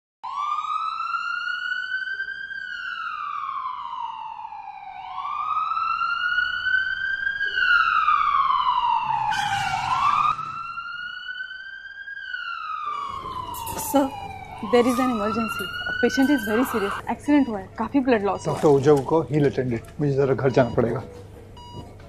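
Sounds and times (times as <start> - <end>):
ambulance siren wailing: 0.2 - 21.9.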